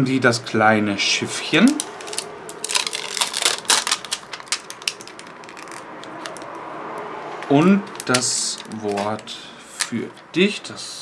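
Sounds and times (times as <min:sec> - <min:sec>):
plastic sheet crackling and clicking: 0:01.6 - 0:06.6, 0:07.9 - 0:09.3.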